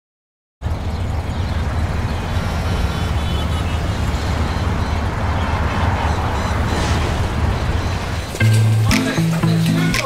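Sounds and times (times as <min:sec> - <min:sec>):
motorcycle engine idling: 0:00.7 - 0:05.1.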